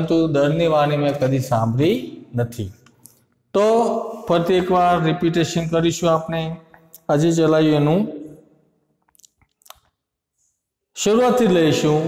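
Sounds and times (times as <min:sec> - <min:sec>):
man speaking: 0:00.0 - 0:02.8, 0:03.5 - 0:08.4, 0:11.0 - 0:12.0.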